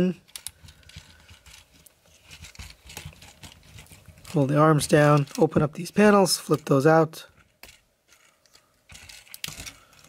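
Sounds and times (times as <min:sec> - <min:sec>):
plastic toy parts clicking: 0:00.2 - 0:05.6, 0:07.3 - 0:10.0.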